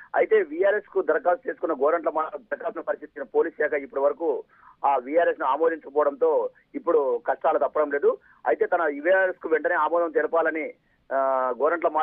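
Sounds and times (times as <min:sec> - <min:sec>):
person talking over telephone: 0:00.0 - 0:12.0.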